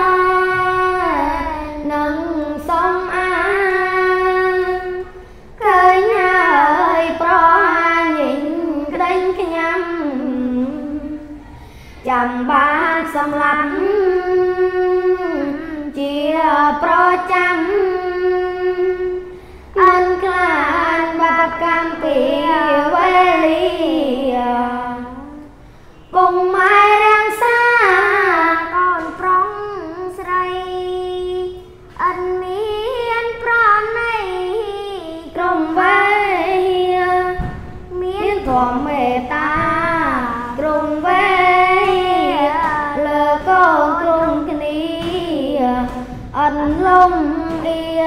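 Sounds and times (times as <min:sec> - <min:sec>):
boy chanting unaccompanied: 0:00.0 - 0:48.0.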